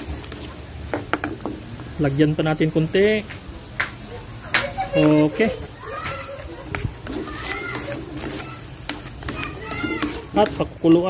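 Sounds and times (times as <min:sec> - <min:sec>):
utensils scraping a wok: 0:00.0 - 0:01.7, 0:04.9 - 0:11.0.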